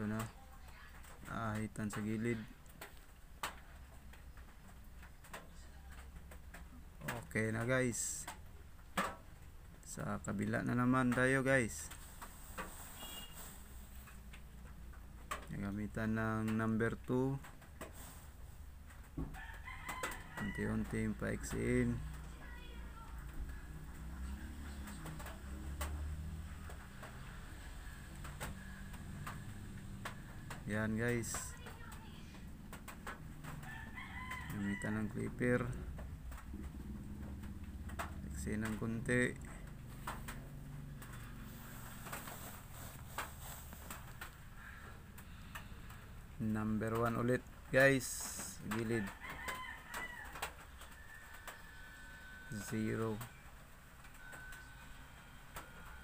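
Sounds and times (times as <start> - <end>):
rooster crowing: 19.2 - 22.2, 33.4 - 35.7, 48.8 - 53.5.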